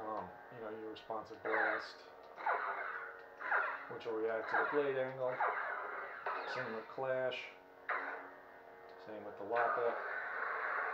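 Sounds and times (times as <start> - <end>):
lightsaber hum: 0.0 - 10.9.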